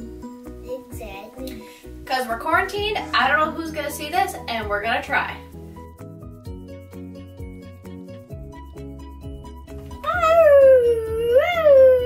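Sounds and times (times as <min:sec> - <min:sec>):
background music: 0:00.0 - 0:12.0
child's wavering cat-like vocal sound: 0:10.0 - 0:12.0.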